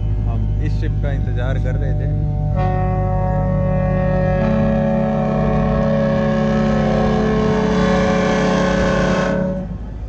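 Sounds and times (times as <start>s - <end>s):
ship's horn blast: 0.0s - 10.0s.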